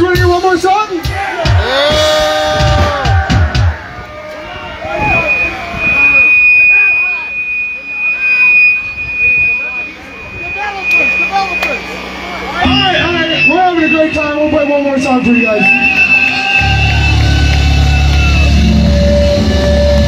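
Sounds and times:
people talking: 0:00.0 - 0:01.2, 0:04.4 - 0:16.1
amplifier feedback whine: 0:03.8 - 0:20.0
low steady tones: 0:04.1 - 0:20.0.

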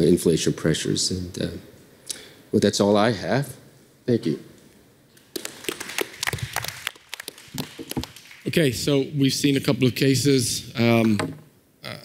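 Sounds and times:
scattered applause: 0:05.3 - 0:08.7.

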